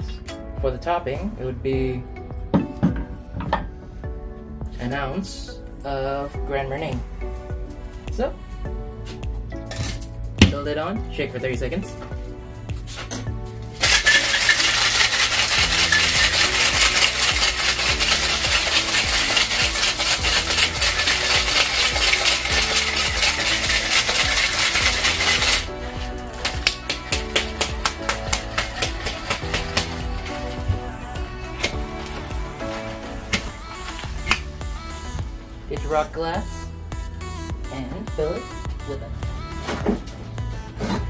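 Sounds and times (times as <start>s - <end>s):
background music: 0.0s - 41.0s
ice rattling in cocktail shaker: 13.8s - 30.6s.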